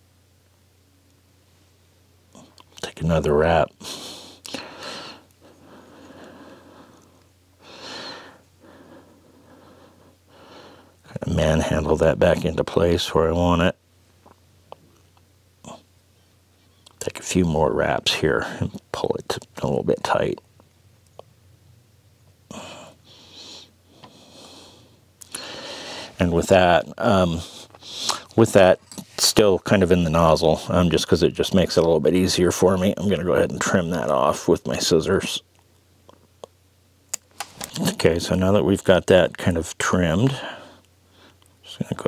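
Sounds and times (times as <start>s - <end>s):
noisy breathing close to microphone: 3.8s - 11.1s, 22.5s - 26.2s, 27.2s - 28.4s, 40.3s - 41.5s.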